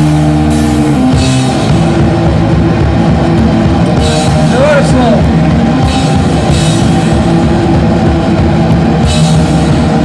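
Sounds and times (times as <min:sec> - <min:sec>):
distorted guitar and bass: 0:00.0 - 0:10.0
drums: 0:00.0 - 0:10.0
punk band playing live: 0:00.0 - 0:10.0.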